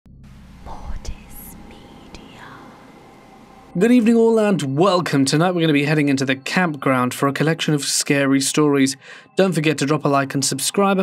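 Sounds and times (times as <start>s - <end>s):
low rumble: 0.1s - 4.0s
faint whispering: 0.6s - 3.0s.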